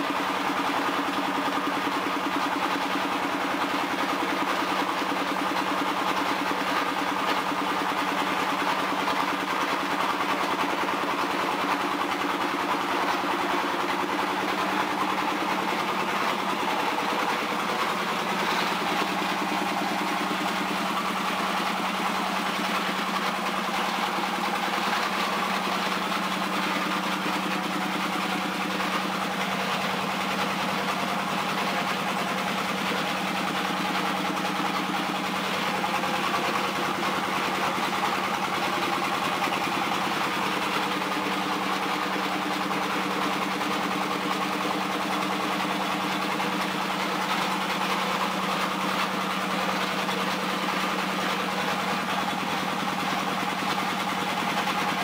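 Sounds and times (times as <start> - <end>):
machine humming and grinding: 2.0 - 55.0.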